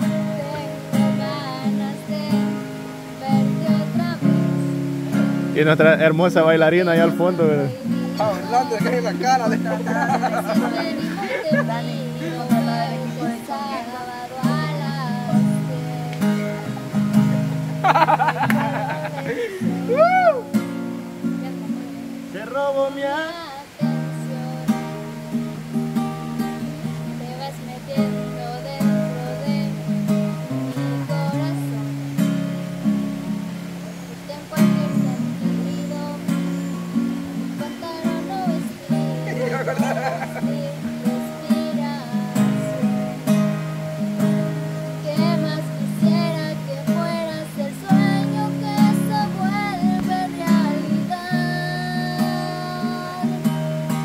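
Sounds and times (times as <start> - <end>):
girl singing: 0.0 - 5.2, 6.6 - 22.2, 23.2 - 25.7, 26.4 - 32.5, 34.2 - 54.0
acoustic guitar strumming: 0.0 - 54.0.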